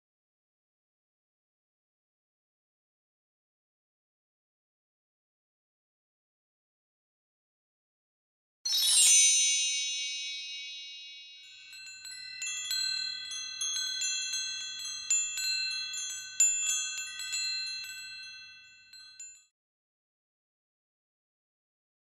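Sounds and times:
shimmering chime stroke: 0:08.7 - 0:19.4
cascade of tinkling chimes: 0:08.7 - 0:19.5.

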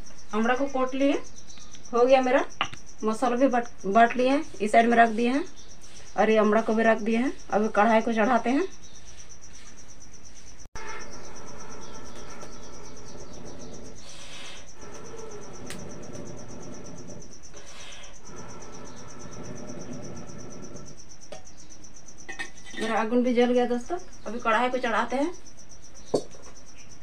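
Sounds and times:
insects chirring: 0:00.0 - 0:27.0.

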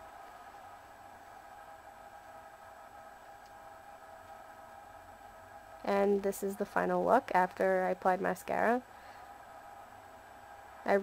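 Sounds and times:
faint high-pitched hum: 0:00.0 - 0:11.0.

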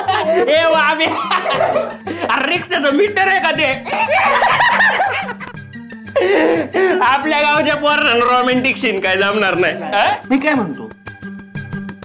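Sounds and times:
men laughing: 0:00.0 - 0:02.6, 0:03.6 - 0:07.2
background music: 0:00.0 - 0:12.0.

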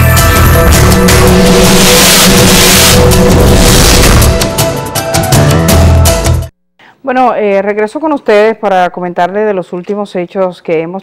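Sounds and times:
tv theme music: 0:00.0 - 0:06.5
rushing whoosh: 0:00.5 - 0:05.0.

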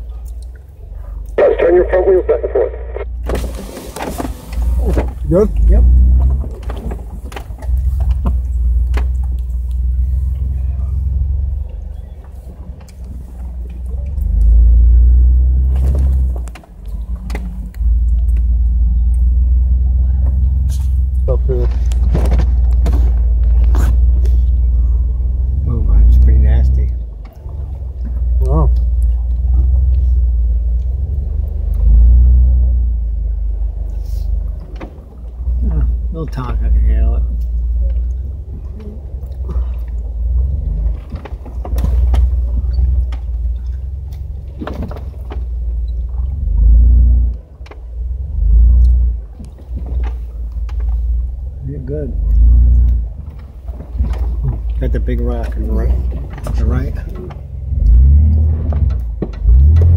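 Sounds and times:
engine rumbling: 0:00.0 - 0:59.9
body and suspension rattles: 0:03.1 - 0:59.9.

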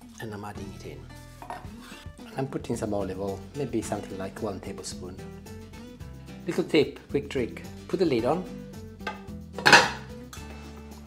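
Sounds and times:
background music: 0:00.0 - 0:11.0
glass lid clanking on pan: 0:09.1 - 0:10.1.

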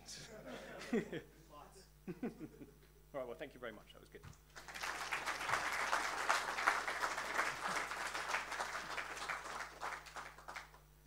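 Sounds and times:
audience applauding: 0:04.5 - 0:10.9.

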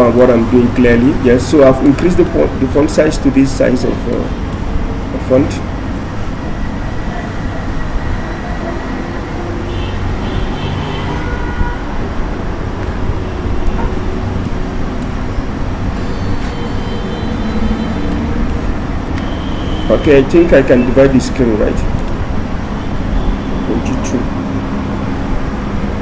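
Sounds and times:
faint clicks: 0:22.0 - 0:22.2.

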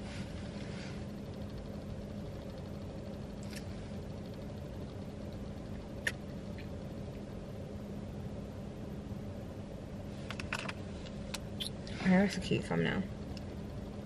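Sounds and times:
car idling hum: 0:00.0 - 0:14.0.

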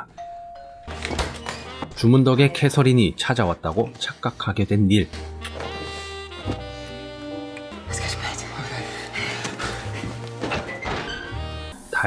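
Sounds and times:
film music: 0:00.0 - 0:12.0
two-note doorbell chime: 0:00.2 - 0:01.0.

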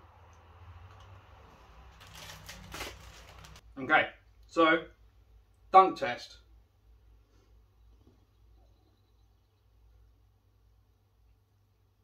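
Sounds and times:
plastic packet crinkling: 0:01.9 - 0:03.6.

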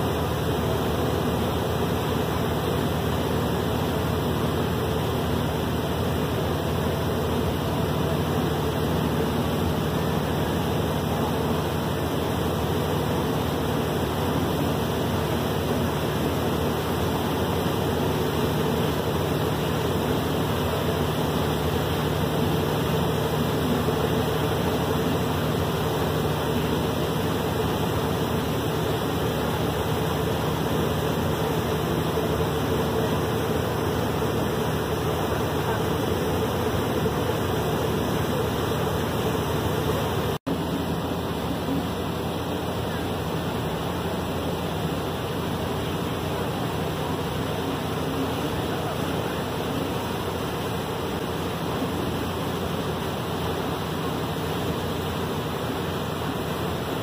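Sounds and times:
boat engine drone: 0:00.0 - 0:57.0
heavy rain on river: 0:00.0 - 0:57.0.

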